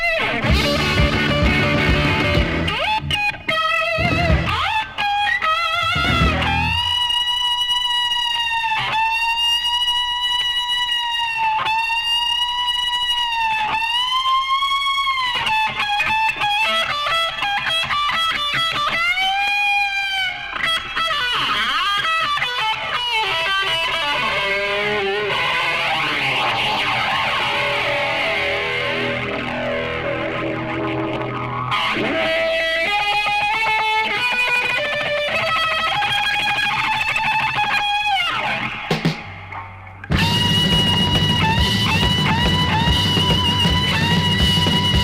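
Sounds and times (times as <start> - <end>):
electric guitar bending notes: 0.0 - 45.0
bass and drums: 0.4 - 3.3, 4.0 - 4.8, 5.8 - 7.0, 38.9 - 45.0.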